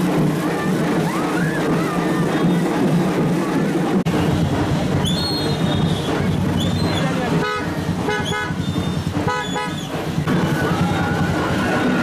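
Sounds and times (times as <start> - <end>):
street procession noise: 0.0 - 12.0.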